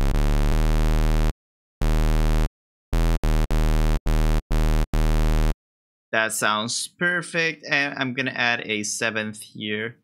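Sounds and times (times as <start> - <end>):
buzzy square wave bass notes: 0.0 - 5.6.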